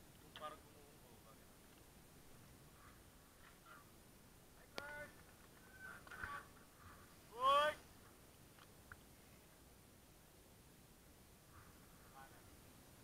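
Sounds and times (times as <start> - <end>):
faint voices: 2.7 - 7.8.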